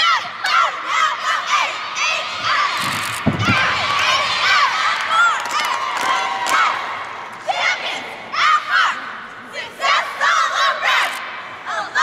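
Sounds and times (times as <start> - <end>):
cheerleaders shouting a cheer: 0.0 - 12.0.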